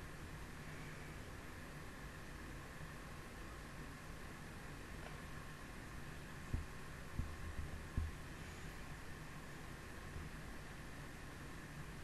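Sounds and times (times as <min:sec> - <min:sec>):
faint hum and hiss: 0:00.0 - 0:12.0
soft thumps on a microphone: 0:06.5 - 0:08.2.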